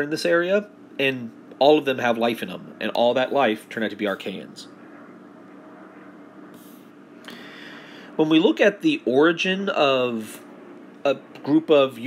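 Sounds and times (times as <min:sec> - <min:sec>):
faint room hum: 0:00.0 - 0:12.0
soft high hiss: 0:00.0 - 0:12.0.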